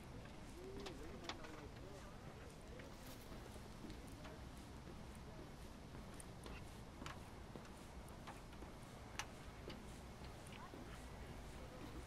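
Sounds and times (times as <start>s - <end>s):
faint outdoor background: 0.0s - 12.0s
footsteps clicking: 0.0s - 12.0s.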